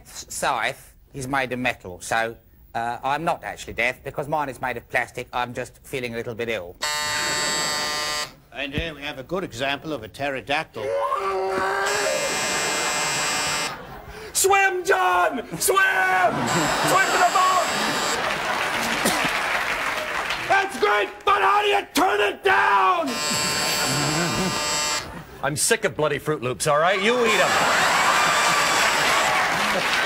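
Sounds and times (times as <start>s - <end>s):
harsh electric buzzer: 6.8s - 8.4s, 11.7s - 13.9s, 16.3s - 18.4s, 23.0s - 25.2s, 28.0s - 29.3s.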